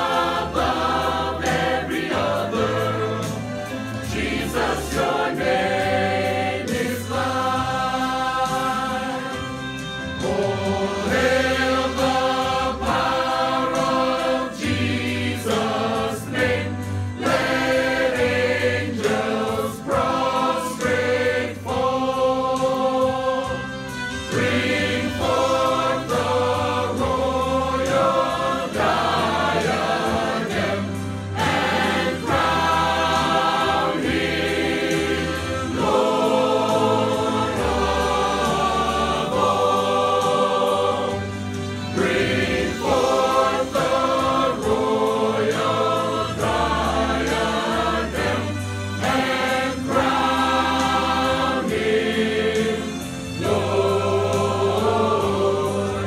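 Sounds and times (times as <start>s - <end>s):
mixed choir singing gospel: 0.0s - 56.0s.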